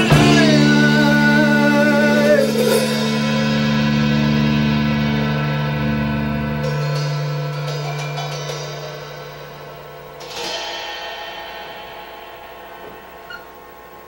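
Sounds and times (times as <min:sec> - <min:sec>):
band ringing final chord: 0:00.0 - 0:14.0
drum and cymbal hits: 0:00.0 - 0:14.0.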